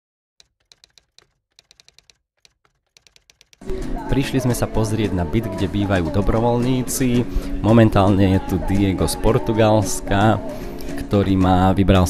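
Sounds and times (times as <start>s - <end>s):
typing on computer keyboard: 0.4s - 3.7s
music: 3.6s - 12.0s.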